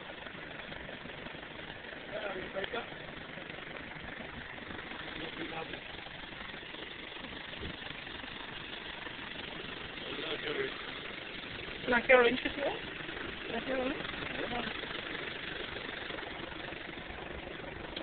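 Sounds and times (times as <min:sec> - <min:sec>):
steady background noise: 0:00.0 - 0:18.0.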